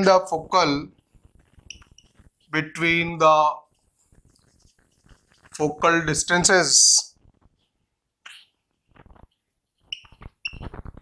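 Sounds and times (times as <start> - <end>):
marker pen writing on whiteboard: 1.0 - 3.0, 3.7 - 5.8
marker tip squeaking on board: 1.6 - 2.5, 9.8 - 10.9.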